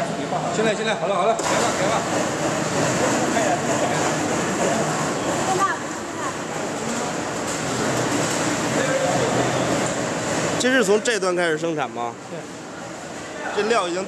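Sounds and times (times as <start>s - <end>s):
factory machinery running: 0.0s - 14.0s.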